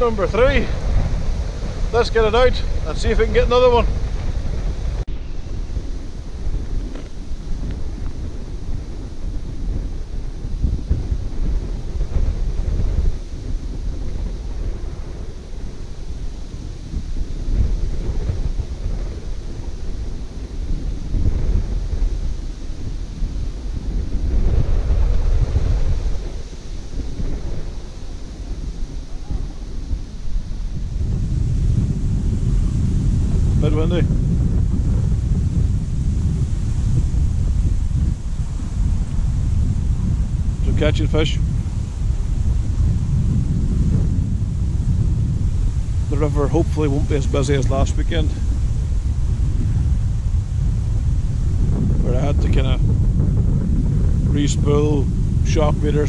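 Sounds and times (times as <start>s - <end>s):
strong wind buffeting microphone: 0.0s - 56.0s.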